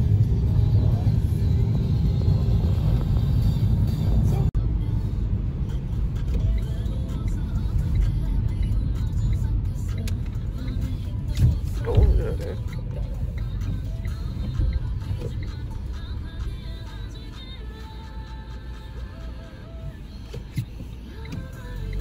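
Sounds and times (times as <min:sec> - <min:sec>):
car engine and tyre rumble: 0:00.0 - 0:22.0.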